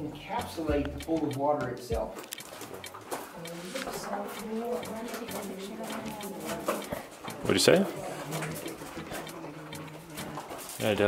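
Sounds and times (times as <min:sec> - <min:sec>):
person murmuring: 0:04.9 - 0:10.5.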